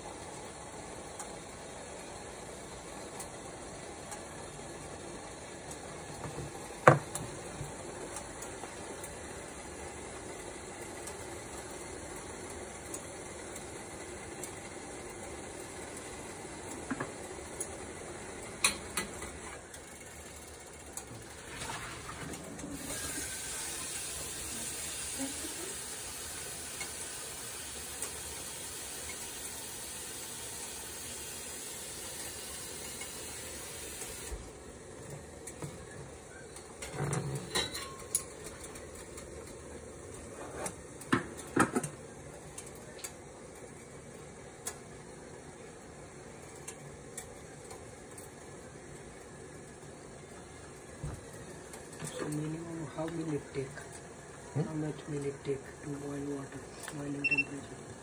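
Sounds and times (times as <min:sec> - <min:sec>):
water sizzling in a pot: 0:00.0 - 0:34.6
bright hiss: 0:22.8 - 0:34.4.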